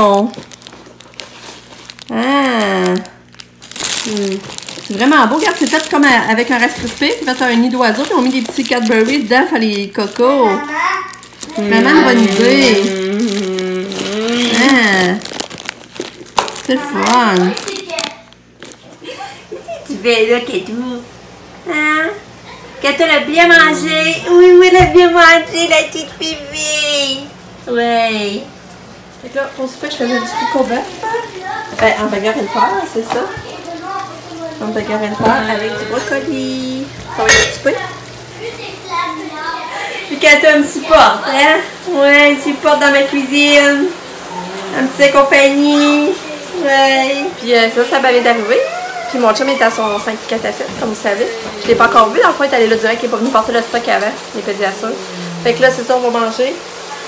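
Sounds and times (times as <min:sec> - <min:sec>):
cellophane crinkling: 0:00.0 - 0:19.2
low steady hum: 0:00.0 - 0:47.5
woman's drawn-out voice: 0:11.5 - 0:15.2, 0:23.0 - 0:27.3, 0:34.8 - 0:37.3, 0:54.9 - 0:56.2.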